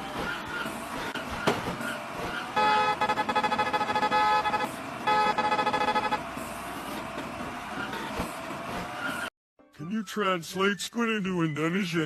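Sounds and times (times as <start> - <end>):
traffic and engine noise: 0.0 - 9.3
vehicle horn blasts: 2.5 - 6.3.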